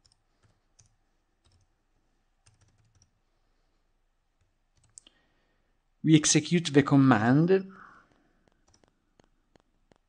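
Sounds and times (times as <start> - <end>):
keyboard keystrokes: 8.4 - 10.0.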